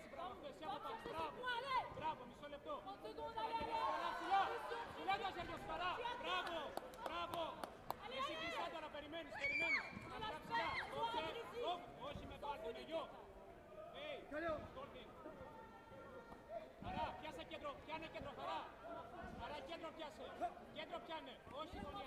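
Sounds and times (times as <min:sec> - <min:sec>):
overlapping voices and chatter: 0:00.0 - 0:22.0.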